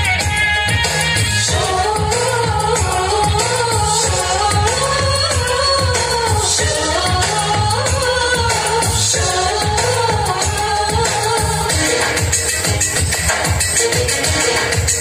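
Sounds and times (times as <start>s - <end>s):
dance song with singing: 0.0s - 15.0s.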